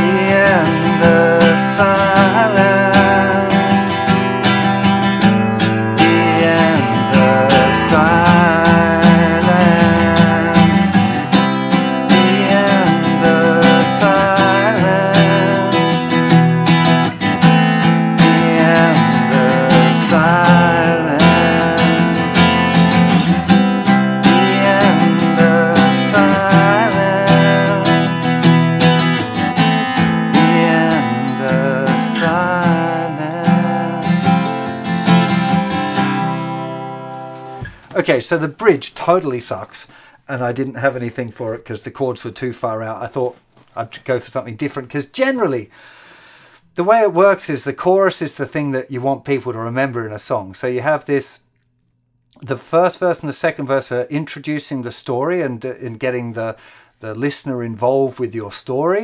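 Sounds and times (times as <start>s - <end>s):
acoustic guitar strumming: 0.0s - 40.1s
person humming a melody: 6.0s - 11.0s, 18.2s - 23.2s.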